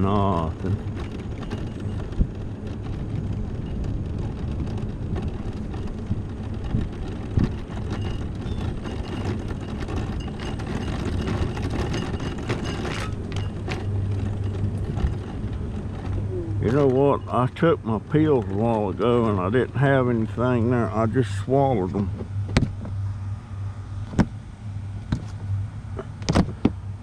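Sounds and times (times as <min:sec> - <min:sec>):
sharp knocks over bumps: 0:00.0 - 0:23.0, 0:24.0 - 0:24.4, 0:25.0 - 0:26.8
scooter motor hum: 0:00.0 - 0:27.0
tyre rumble and rattling: 0:00.0 - 0:27.0.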